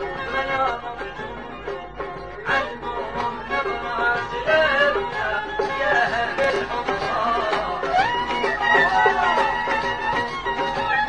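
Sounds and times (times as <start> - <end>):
ornamented violin melody: 0.0 - 11.0.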